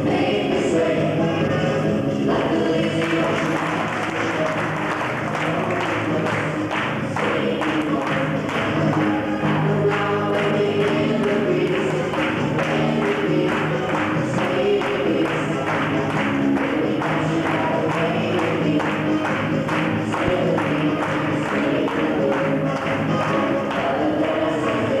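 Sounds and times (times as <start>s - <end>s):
fast latin dance music: 0.0s - 25.0s.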